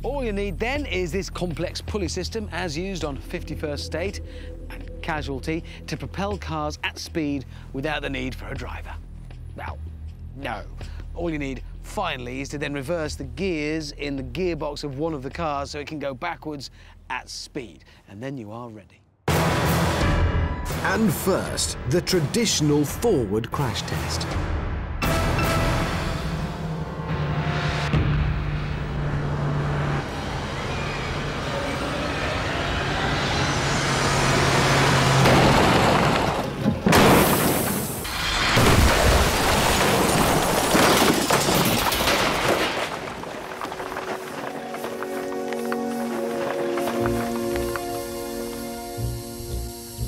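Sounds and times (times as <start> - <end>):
background music: 0.0 - 17.6, 19.3 - 31.0, 44.1 - 50.0
car crashing through brick walls: 34.4 - 44.5
bricks tumbling: 35.3 - 48.0.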